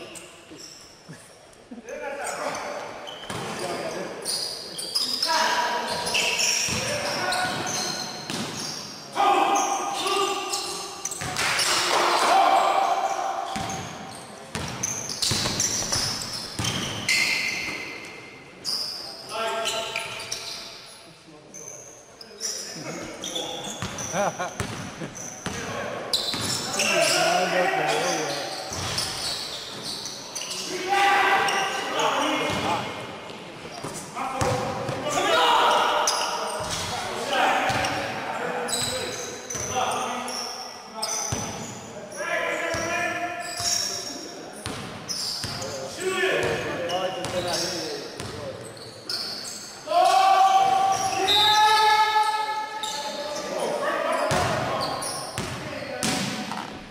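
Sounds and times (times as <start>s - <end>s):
players shouting: 11.6s - 13.6s, 34.4s - 36.4s, 49.8s - 52.6s.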